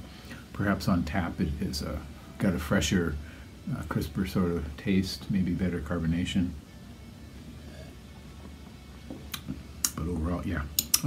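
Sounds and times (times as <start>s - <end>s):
low room hum: 0.0s - 11.0s
sharp clicks: 10.8s - 11.0s.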